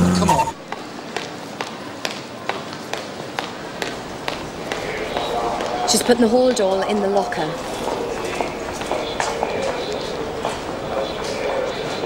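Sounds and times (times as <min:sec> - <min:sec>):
hard-soled footsteps clicking: 0:00.6 - 0:12.0
indistinct voices: 0:01.6 - 0:12.0.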